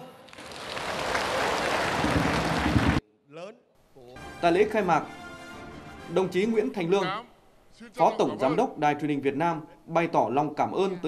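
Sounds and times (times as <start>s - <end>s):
audience applauding: 0.2s - 3.0s.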